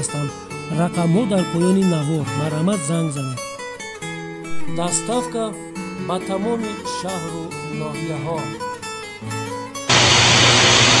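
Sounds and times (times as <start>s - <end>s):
acoustic guitar music: 0.0s - 9.9s
loud tv static hiss: 9.9s - 11.0s.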